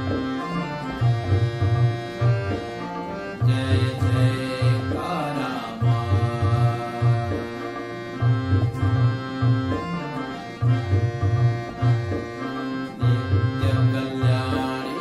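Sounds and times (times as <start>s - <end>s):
harmonium melody: 0.0s - 15.0s
tabla beat: 0.0s - 15.0s.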